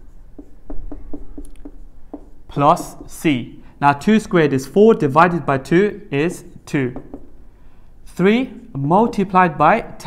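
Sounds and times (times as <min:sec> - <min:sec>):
marker pen writing on whiteboard: 0:00.0 - 0:03.4, 0:06.3 - 0:07.5.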